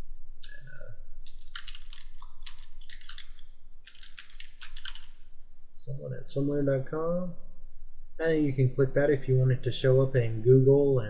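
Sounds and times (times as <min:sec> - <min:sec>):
typing on computer keyboard: 0:01.3 - 0:05.2.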